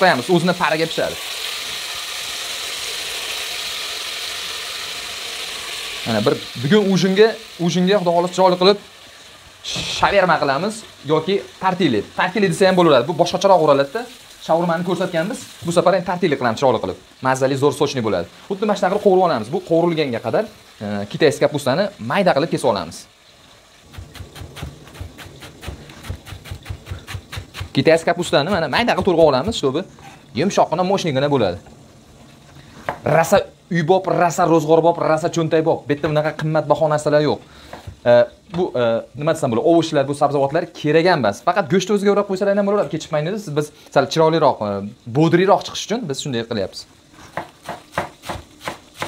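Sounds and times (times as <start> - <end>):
chicken sizzling in hot oil: 0.0 - 35.6, 36.6 - 49.0.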